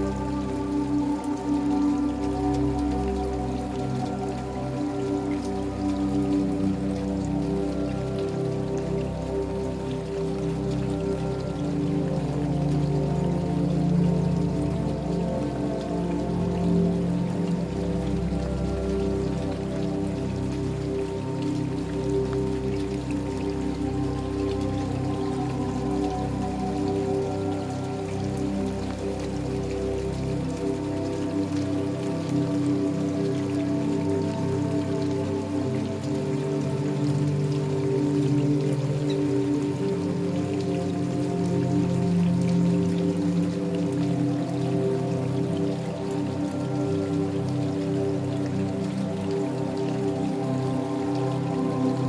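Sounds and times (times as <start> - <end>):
calm new-age music: 0.0 - 52.0
steady rainfall: 0.0 - 52.0.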